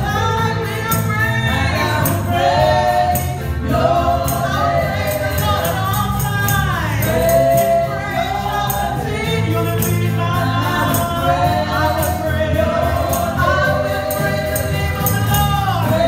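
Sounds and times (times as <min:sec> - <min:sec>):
live band playing: 0:00.0 - 0:16.0
women singing gospel song: 0:00.0 - 0:16.0.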